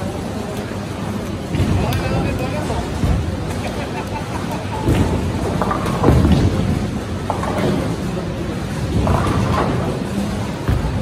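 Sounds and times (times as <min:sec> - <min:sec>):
people's voices: 0:00.0 - 0:05.4
bowling balls rumbling: 0:00.8 - 0:11.0
bowling pins crashing: 0:04.6 - 0:11.0.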